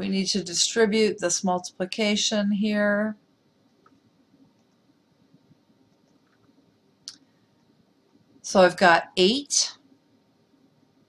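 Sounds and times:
faint clicks: 3.6 - 8.2
person speaking: 8.5 - 9.8.

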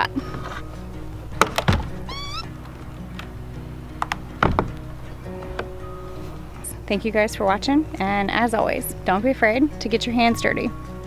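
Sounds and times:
background music: 0.0 - 11.0
door latch clicks: 1.4 - 3.4
short wavering squeak: 2.0 - 2.5
door knock: 4.0 - 4.8.

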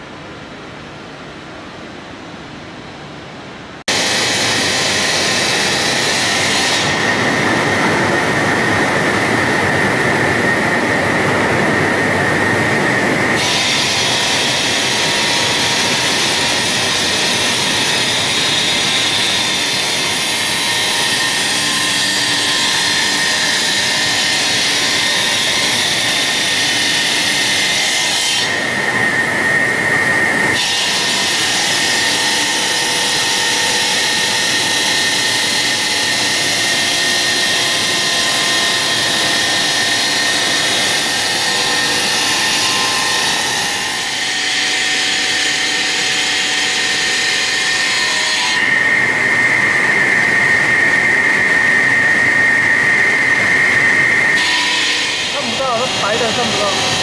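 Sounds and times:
high machine whine: 0.0 - 57.0
saw blades cutting stone: 3.9 - 57.0.

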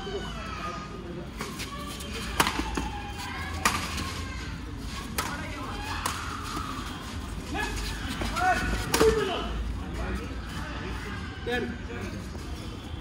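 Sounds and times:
rackets hitting shuttlecock: 1.4 - 4.0, 5.1 - 6.6, 8.8 - 9.3.

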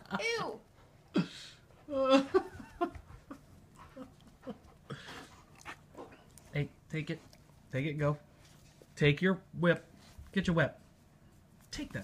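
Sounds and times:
dog panting quietly: 2.9 - 7.6.

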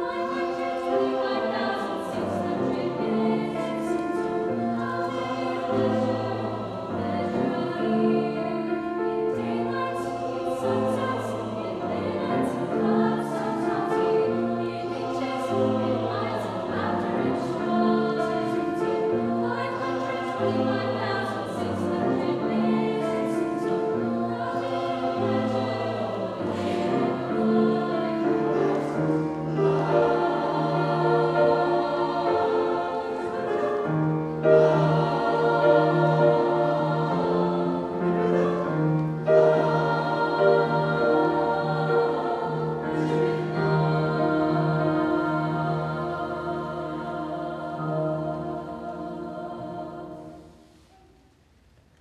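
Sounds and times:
grand piano accompaniment: 0.0 - 51.2
choir singing: 0.0 - 51.4.

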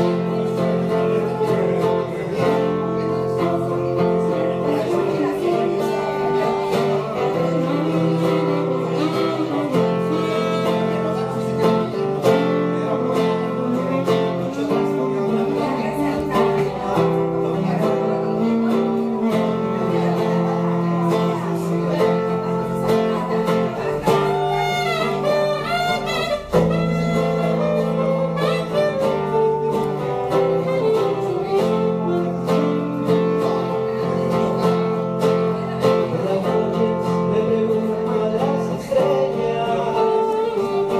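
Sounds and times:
acoustic guitar playing: 0.0 - 40.9.

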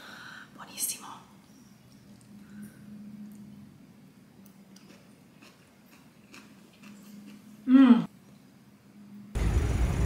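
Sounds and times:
woman whispering: 0.5 - 1.4.

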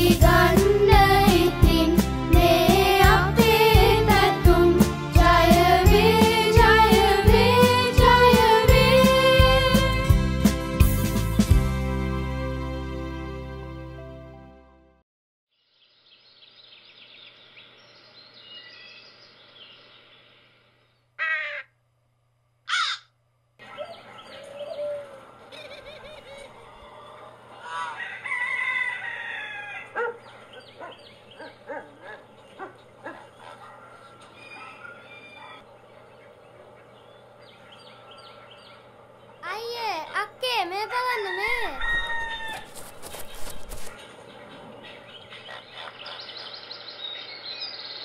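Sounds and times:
birds chirping: 22.7 - 28.1, 29.8 - 42.5, 43.2 - 48.0
loud sweeping bird calls: 22.7 - 40.3, 43.2 - 48.0.

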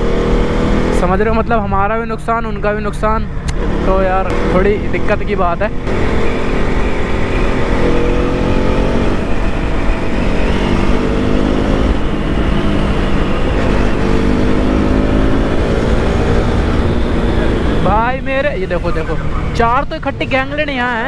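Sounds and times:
motorcycle engine running: 0.0 - 19.8.

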